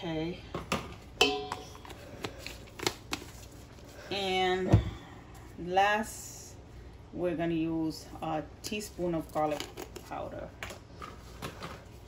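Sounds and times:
metal bowl ringing: 0:01.2 - 0:01.9.

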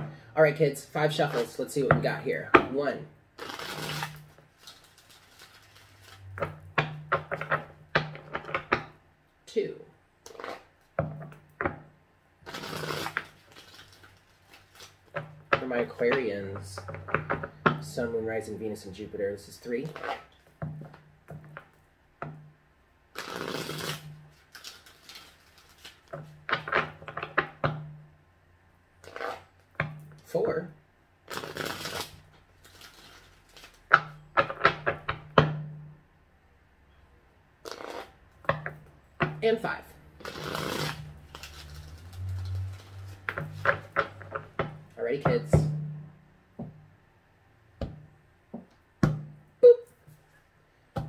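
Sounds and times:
cards riffling: 0:03.4 - 0:06.3, 0:12.4 - 0:15.3, 0:23.2 - 0:27.4, 0:31.3 - 0:34.6, 0:40.2 - 0:44.6.

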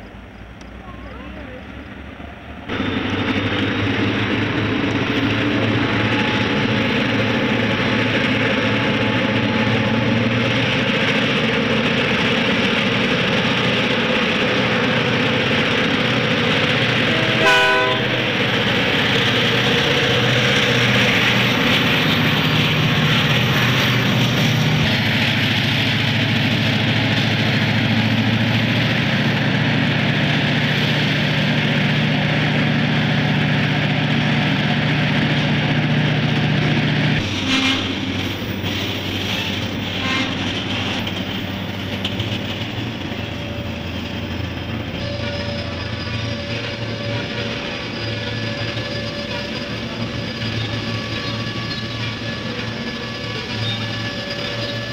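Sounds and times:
diesel locomotive engines droning: 0:00.0 - 0:54.9
train horn blast: 0:17.0 - 0:18.5, 0:37.2 - 0:38.6, 0:39.4 - 0:41.1, 0:44.9 - 0:54.9.

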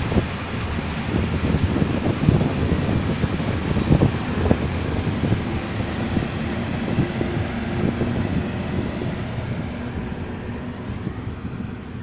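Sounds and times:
train rumble: 0:00.0 - 0:12.0.

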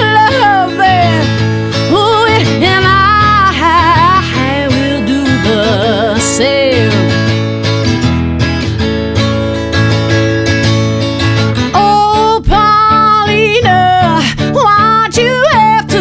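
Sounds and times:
woman singing: 0:00.0 - 0:07.5, 0:11.6 - 0:16.0
electric guitar strumming chords: 0:00.0 - 0:16.0.

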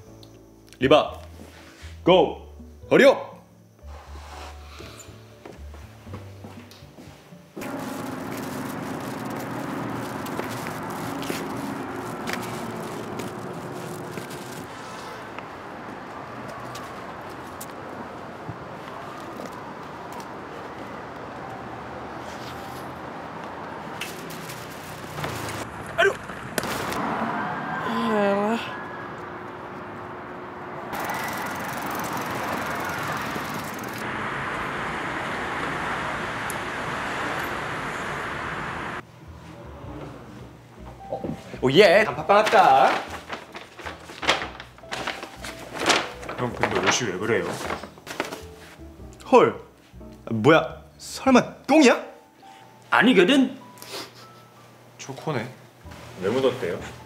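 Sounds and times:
faint background music: 0:00.0 - 0:14.5, 0:39.0 - 0:57.0
outdoor street noise: 0:03.5 - 0:49.2
steady road traffic: 0:03.8 - 0:41.3.

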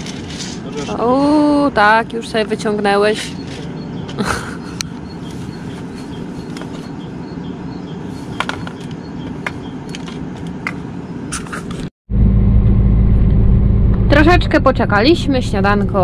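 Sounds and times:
truck engine drone in cab: 0:00.0 - 0:16.0
low background rumble: 0:12.1 - 0:16.0.

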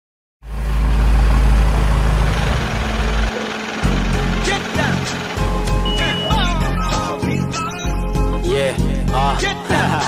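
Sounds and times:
deep engine-like rumble: 0:00.4 - 0:07.5.

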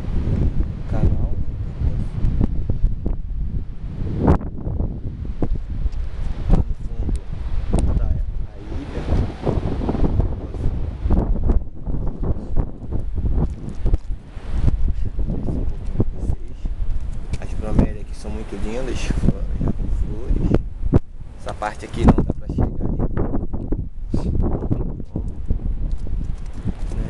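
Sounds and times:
microphone pops and crackles: 0:00.0 - 0:27.0
wind buffeting microphone: 0:00.0 - 0:27.0.

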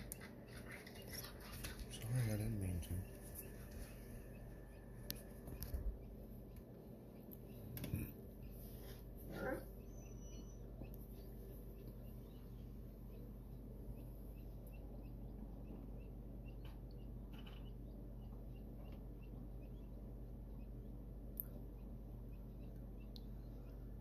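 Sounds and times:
chicks peeping: 0:00.0 - 0:24.0
steady low hum: 0:00.0 - 0:24.0.

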